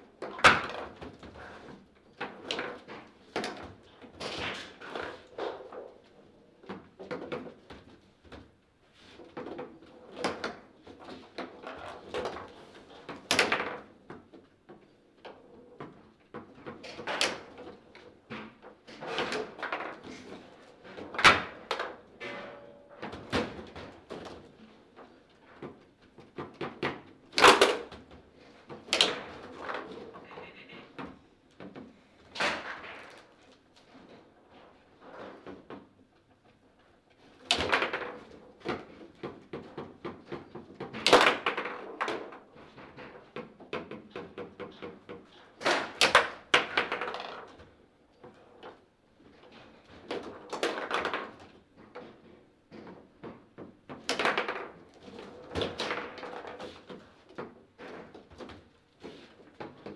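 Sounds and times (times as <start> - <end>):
foosball ball clacking: 25.5 - 30.2, 37.4 - 47.7, 50.0 - 58.5.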